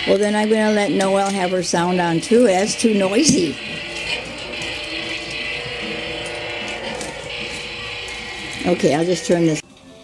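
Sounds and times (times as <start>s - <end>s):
toy truck motor noise: 0.0s - 9.6s.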